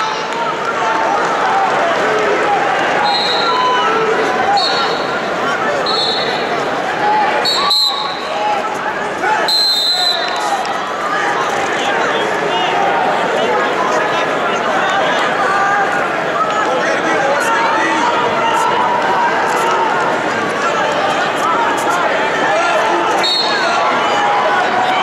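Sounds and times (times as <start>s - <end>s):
crowd talking and shouting: 0.0s - 25.0s
referee whistle blasts: 3.0s - 3.9s, 4.5s - 5.2s, 5.8s - 6.4s, 7.4s - 8.4s, 9.4s - 10.6s, 23.1s - 23.7s.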